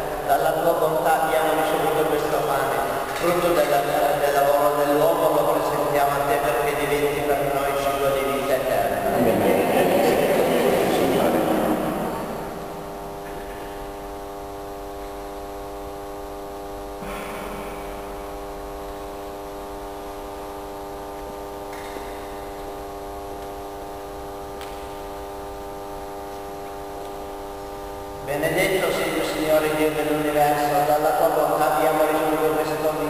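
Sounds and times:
voices: 0.0 - 13.0
steady hum of held tones: 0.0 - 33.0.

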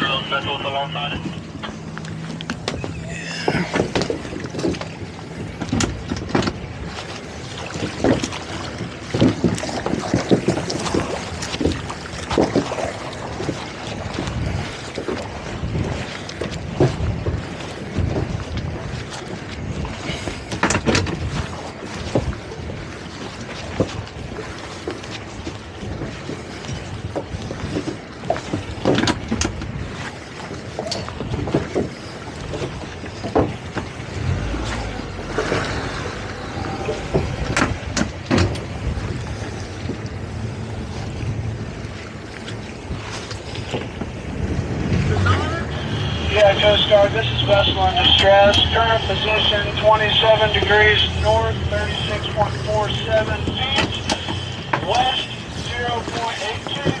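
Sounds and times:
water slapping against boat hull: 0.0 - 57.0
wind buffeting microphone: 0.0 - 57.0.

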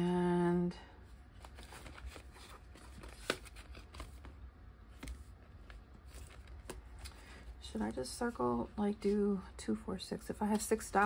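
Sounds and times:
plastic and paper rustling: 1.4 - 7.4.

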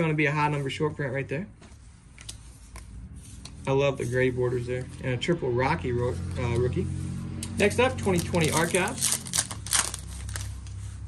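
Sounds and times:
quiet handling of cards: 0.5 - 5.3
foil wrapper crinkling: 8.0 - 10.8.

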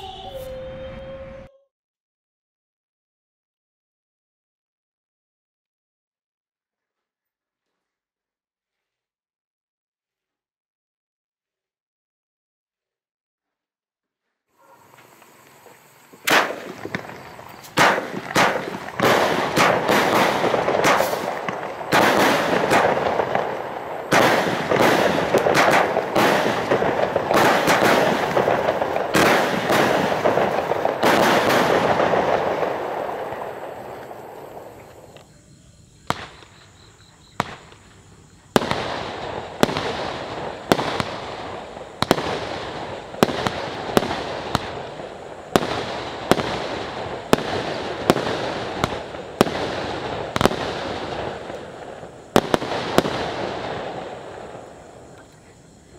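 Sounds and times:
fireworks crackling: 14.6 - 35.4, 36.0 - 55.9
firework shell bursts: 14.9 - 35.2.

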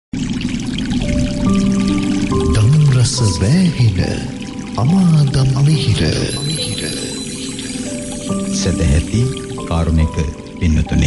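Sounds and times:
held music notes: 1.0 - 11.0.

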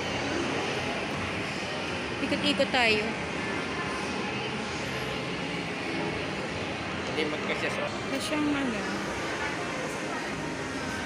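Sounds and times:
shopping mall room hum: 0.0 - 11.0.

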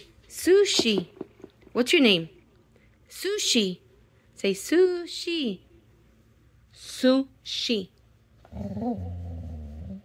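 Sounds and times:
dog low drawn-out vocalization: 8.4 - 10.0.

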